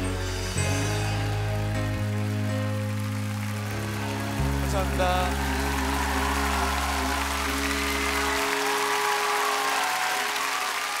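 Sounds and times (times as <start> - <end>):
audience applauding: 0.4 - 11.0.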